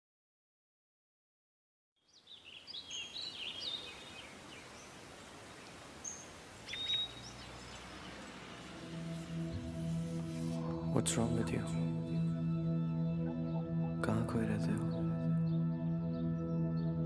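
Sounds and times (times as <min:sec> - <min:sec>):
small birds chirping: 0:02.0 - 0:12.2
outdoor hiss: 0:02.2 - 0:10.8
low musical drone: 0:07.0 - 0:17.0.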